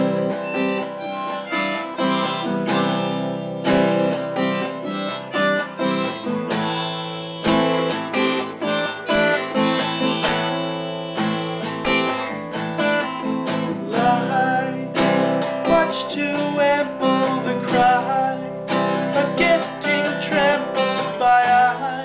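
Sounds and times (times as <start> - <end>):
harmonica long notes: 0.0 - 22.0
strummed guitar: 0.0 - 22.0.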